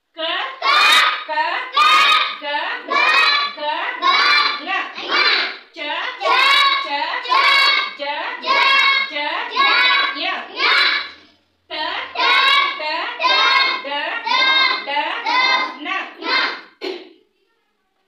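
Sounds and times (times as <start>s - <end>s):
children chanting in unison: 0.6s - 11.3s, 12.0s - 16.8s.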